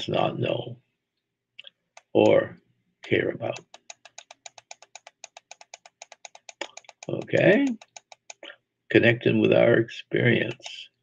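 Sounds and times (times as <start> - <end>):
faint rapid ticking: 3.4 - 8.5.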